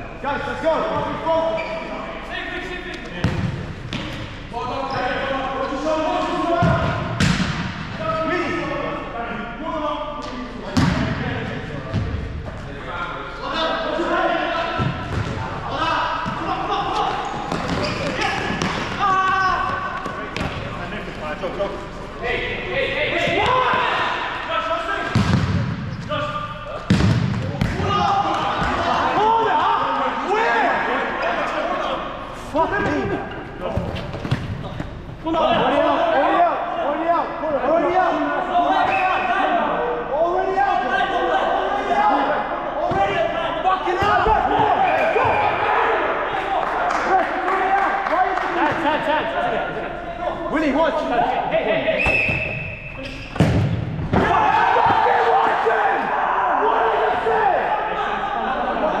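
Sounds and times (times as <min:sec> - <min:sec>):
players shouting: 0:13.4 - 0:21.4, 0:22.2 - 0:34.0, 0:34.8 - 0:52.5, 0:54.0 - 0:59.0.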